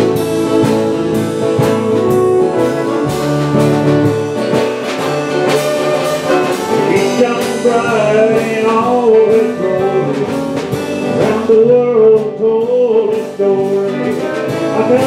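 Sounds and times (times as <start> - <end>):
drum beat with cymbals: 0.0 - 15.0
fiddle melody: 0.0 - 15.0
strummed acoustic guitars: 0.0 - 15.0.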